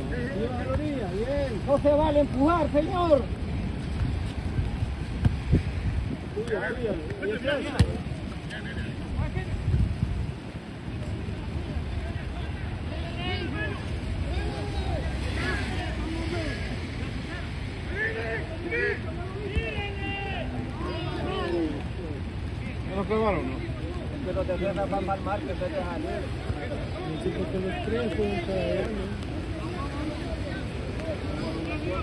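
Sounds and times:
wind buffeting microphone: 3.0 - 11.7
distant players shouting: 17.4 - 22.0.

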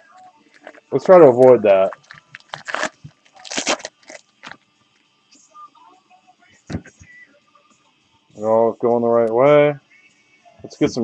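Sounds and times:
packaging tearing and crinkling: 1.8 - 4.6.

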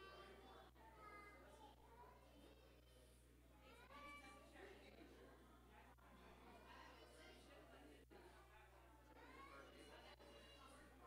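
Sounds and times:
faint distant voices: 0.0 - 11.0.

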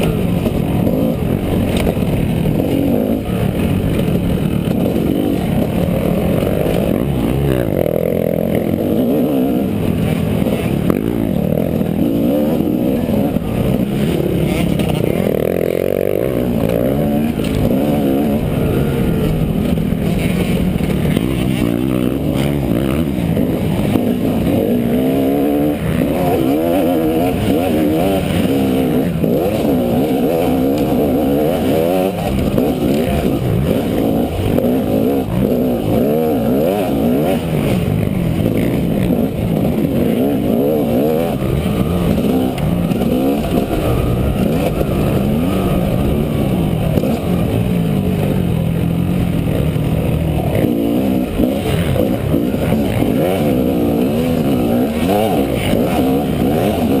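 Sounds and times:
dirt bike engine revving: 0.0 - 57.0.

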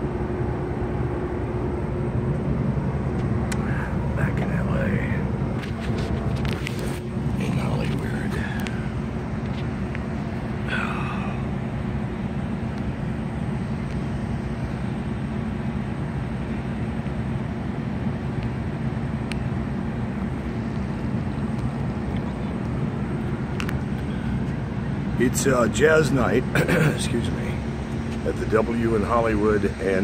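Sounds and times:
distant city traffic rumble: 0.0 - 30.0.

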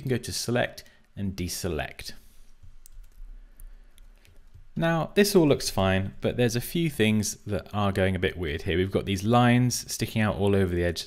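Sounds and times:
low steady hum: 0.0 - 11.0
computer mouse clicks: 2.6 - 4.7.

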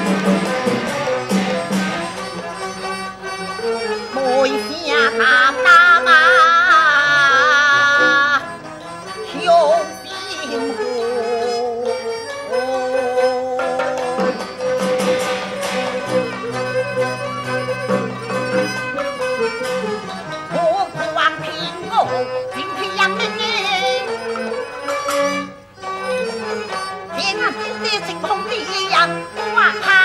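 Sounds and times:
traditional instruments playing melody: 0.0 - 30.0
sharp percussion strokes: 14.1 - 20.2.

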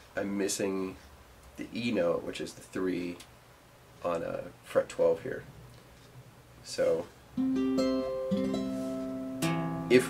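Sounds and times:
acoustic guitar notes plucked: 7.4 - 10.0.

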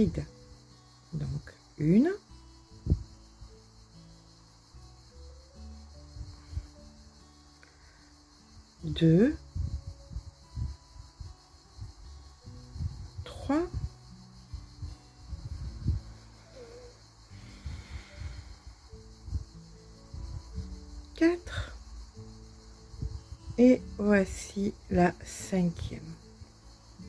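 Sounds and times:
soft background music: 0.0 - 27.0.

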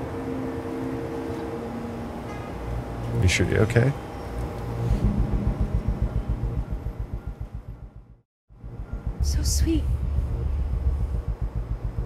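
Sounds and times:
low pulsing rumble: 4.8 - 12.0.

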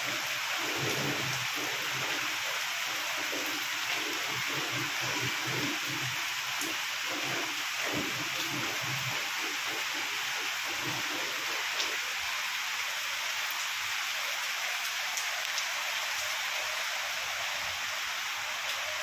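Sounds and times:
raindrop ticks: 0.0 - 12.4, 15.2 - 16.3
steady rain hiss: 0.0 - 19.0.

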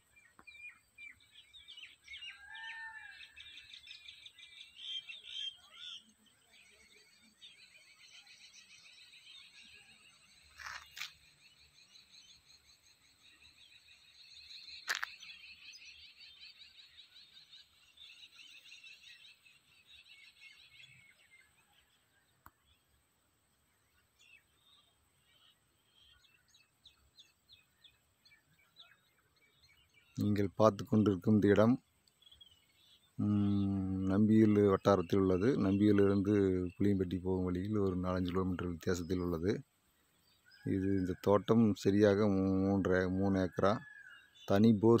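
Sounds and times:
birds chirping: 0.0 - 45.0.

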